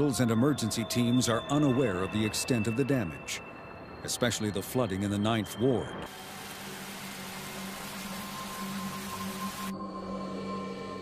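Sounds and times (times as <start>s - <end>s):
steady hiss: 6.1s - 9.7s.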